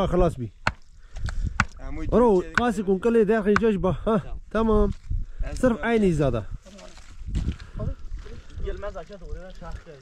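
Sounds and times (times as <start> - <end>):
hammer striking wooden stake: 0.6 - 1.8, 2.5 - 3.8.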